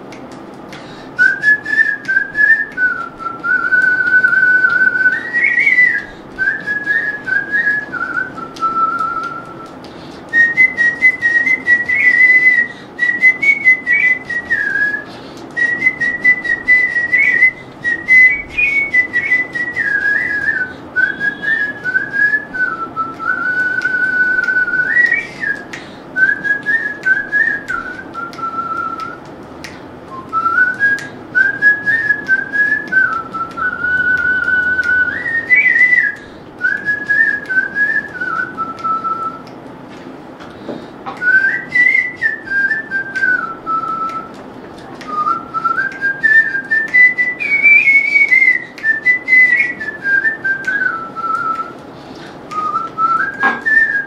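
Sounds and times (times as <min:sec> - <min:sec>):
man whistling a melody: 0:01.2 - 0:39.5, 0:41.1 - 0:54.0.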